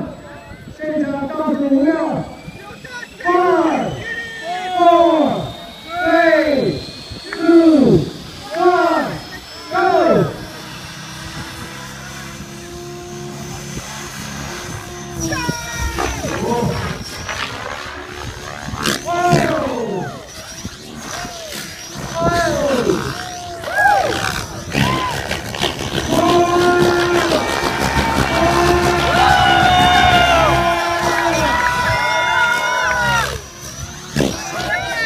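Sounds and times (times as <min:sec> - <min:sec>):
helicopter rotor hum: 0:00.0 - 0:35.0
thin high whine: 0:00.0 - 0:35.0.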